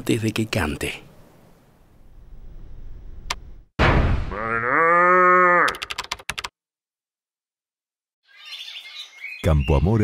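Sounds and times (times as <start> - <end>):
sharp clicks: 5.7 - 6.5.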